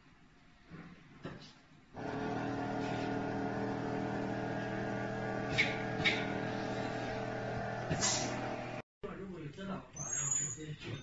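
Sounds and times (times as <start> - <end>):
robot motors humming: 2.0 - 8.8.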